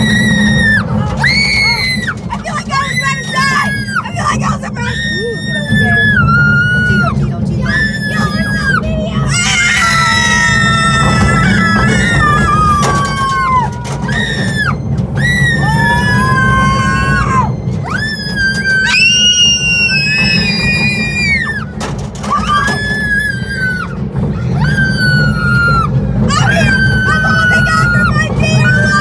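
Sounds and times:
riders screaming: 0.0 - 29.0
roller coaster train rumbling: 0.0 - 29.0.

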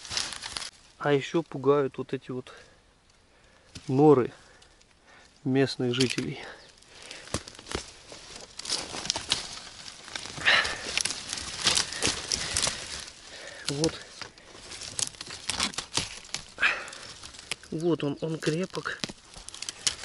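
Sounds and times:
dry leaves crunching: 0.0 - 1.4, 3.7 - 20.0
branches rustling and cracking: 0.0 - 20.0.

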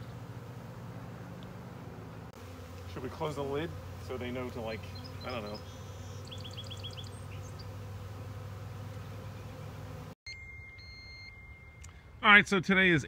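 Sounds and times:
bees humming: 0.0 - 10.2
faint steady high tone: 10.3 - 12.2
high chirps: 10.3 - 12.2.

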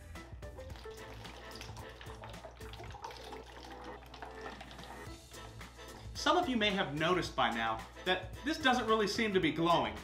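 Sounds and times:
air bubbling through water: 0.7 - 5.1.

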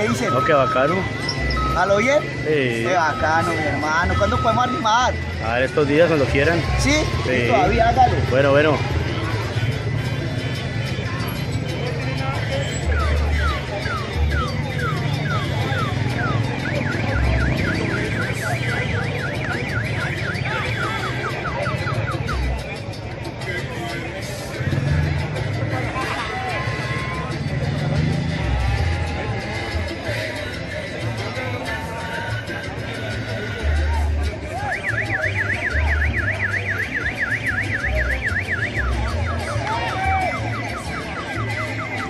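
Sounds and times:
electronic alarm whooping: 0.0 - 8.2, 12.8 - 22.6, 34.6 - 42.0.

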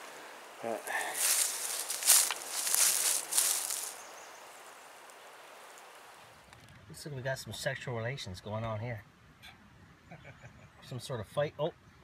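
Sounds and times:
outdoor background noise: 0.0 - 12.0
footsteps in leaf litter: 0.7 - 4.1.

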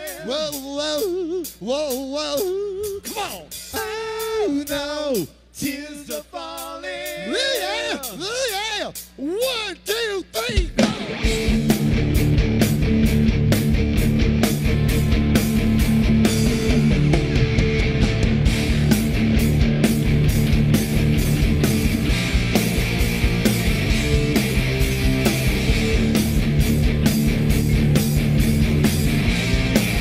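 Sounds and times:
steady drumbeat: 0.0 - 30.0
distorted electric guitars: 10.6 - 30.0
bass guitar: 10.7 - 30.0.

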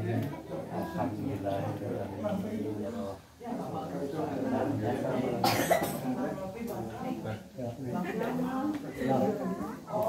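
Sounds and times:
murmured conversation: 0.0 - 10.0
person coughing: 5.4 - 6.0.

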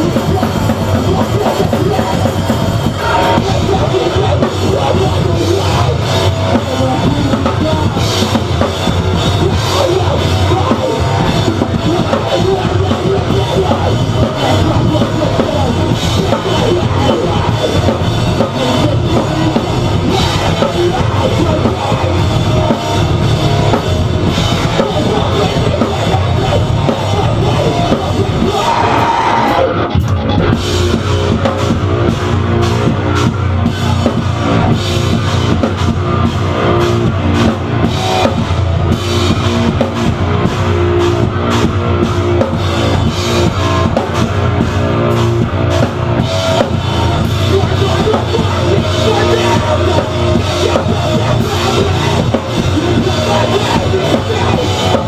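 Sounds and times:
bass guitar: 0.0 - 55.0
distorted electric guitar: 0.0 - 55.0
drum kit pounding: 0.0 - 55.0.

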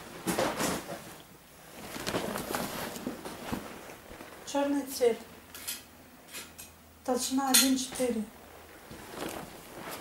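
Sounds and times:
leather hide rustling: 1.8 - 4.4, 8.8 - 10.0.

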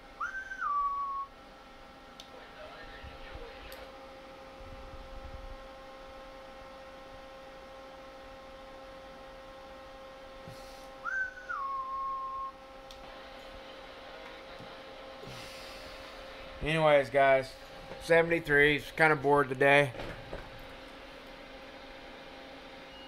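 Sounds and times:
electronic whine of test equipment: 0.0 - 23.0
whistled note dropping in pitch: 0.2 - 1.3, 11.0 - 12.6.

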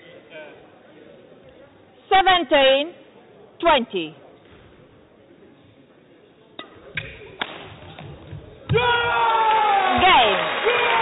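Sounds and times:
rackets hitting shuttlecock: 6.6 - 8.8.

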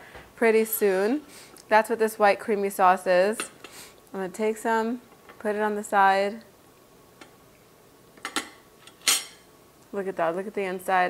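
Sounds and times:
metal spoon clinking on dishes: 8.2 - 9.4.

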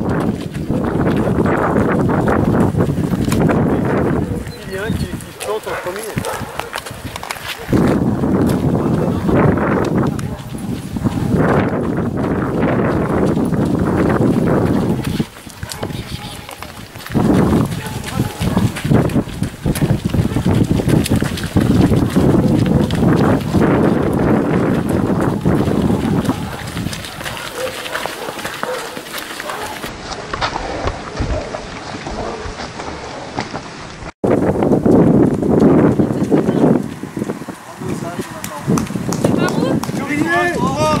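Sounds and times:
running footsteps: 0.0 - 41.0
indistinct voices: 3.6 - 31.6.

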